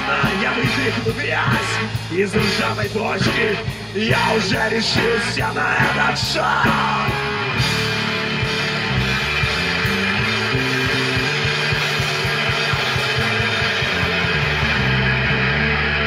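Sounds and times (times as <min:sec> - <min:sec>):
electric bass notes: 0:00.0 - 0:16.0
electric guitar: 0:00.0 - 0:16.0.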